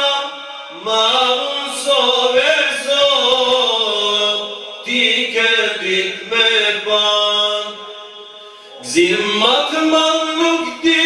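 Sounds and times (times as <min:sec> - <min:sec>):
men singing devotional chant: 0:00.0 - 0:11.0.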